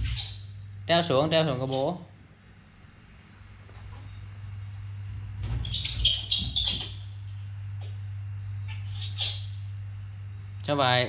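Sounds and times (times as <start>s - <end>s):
baby monkey squealing: 0.0s - 0.5s, 1.5s - 2.0s, 5.4s - 7.1s, 8.8s - 9.6s.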